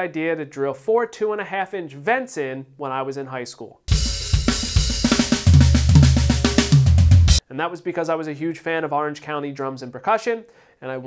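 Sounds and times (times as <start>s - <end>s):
drum kit groove: 3.9s - 7.4s.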